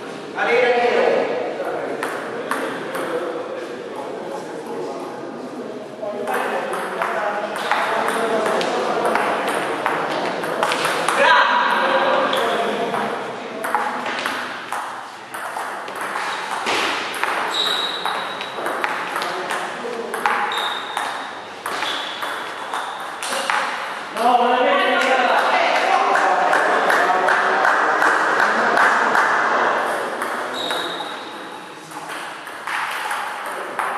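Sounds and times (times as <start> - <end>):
table tennis ball hits: 6.3 - 23.9, 30.2 - 31.1, 31.9 - 33.9.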